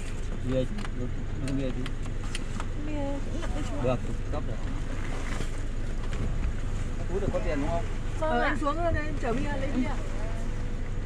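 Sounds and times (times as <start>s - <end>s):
car engine idling rumble: 0.0s - 11.0s.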